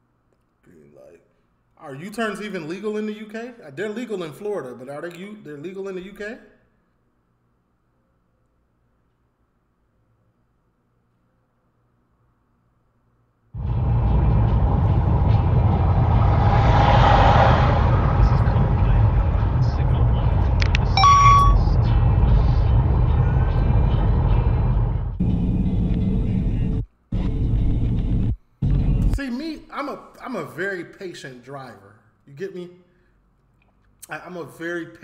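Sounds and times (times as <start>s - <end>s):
engine and tyre rumble: 13.6s - 21.0s, 21.7s - 25.2s
short beep: 20.8s - 21.7s.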